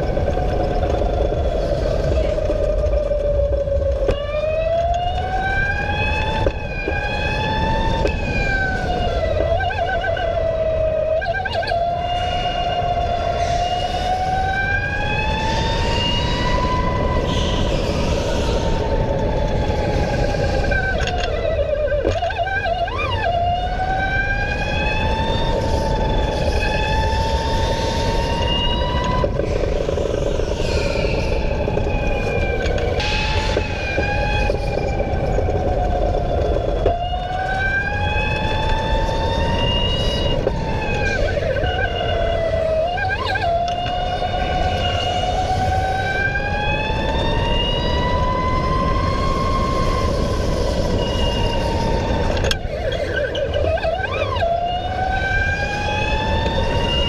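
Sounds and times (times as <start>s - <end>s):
electric go-kart motor whining: 0.0s - 57.0s
steady low rumble: 25.4s - 42.9s.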